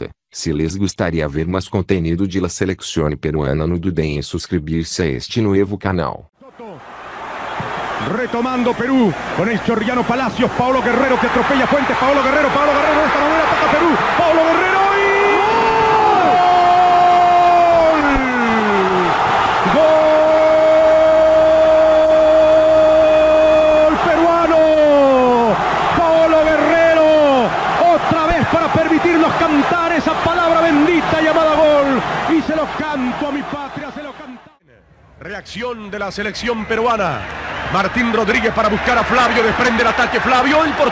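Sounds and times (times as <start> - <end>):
excited shouts: 6.4 - 34.6, 37.0 - 40.9
commentator's drawn-out goal cry: 8.0 - 34.6.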